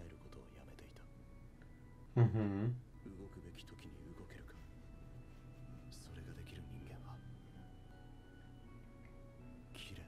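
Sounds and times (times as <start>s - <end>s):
faint background dialogue: 2.1s - 4.7s.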